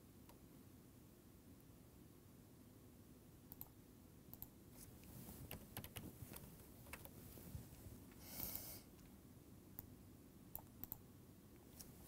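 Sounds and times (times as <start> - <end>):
computer mouse clicks: 3.5 - 7.2, 10.5 - 11.0
keyboard keystrokes: 5.4 - 7.2.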